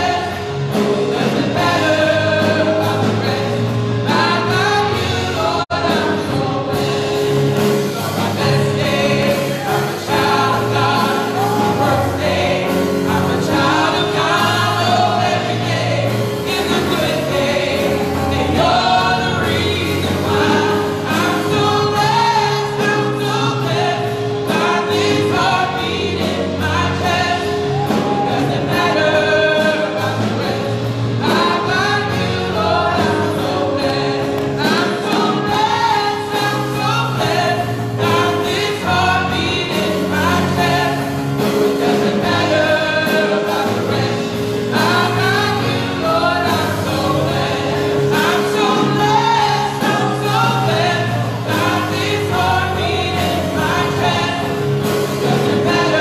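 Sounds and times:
group singing gospel: 0:00.0 - 0:56.0
keyboard accompaniment: 0:00.0 - 0:56.0.

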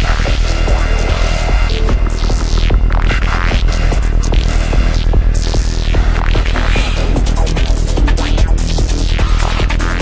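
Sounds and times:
heavy bass line: 0:00.0 - 0:10.0
psytrance music: 0:00.0 - 0:10.0.

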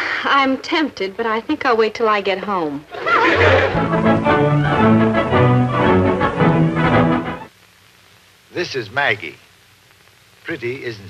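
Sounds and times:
orchestral music with bowed strings: 0:03.1 - 0:07.5.

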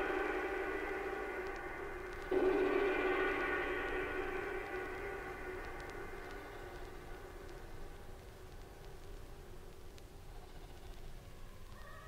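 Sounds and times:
sustained electronic tones: 0:00.0 - 0:08.2
low rumble: 0:00.0 - 0:10.2
tape hiss: 0:00.0 - 0:12.0
faint clicks: 0:04.6 - 0:12.0.

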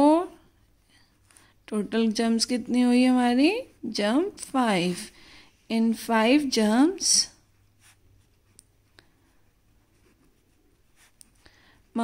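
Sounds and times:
pen scratching on paper: 0:07.6 - 0:12.0.

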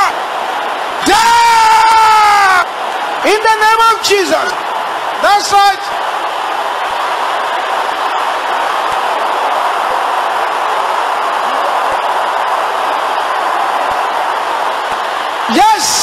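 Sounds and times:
crowd praying aloud: 0:00.0 - 0:16.0.

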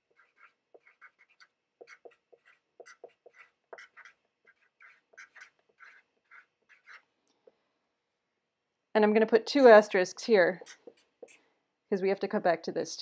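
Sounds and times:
marker squeaking on paper: 0:00.0 - 0:07.1, 0:10.6 - 0:11.4.

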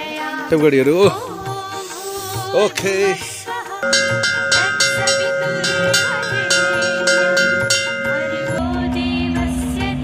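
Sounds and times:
large bell ringing: 0:03.8 - 0:08.8.

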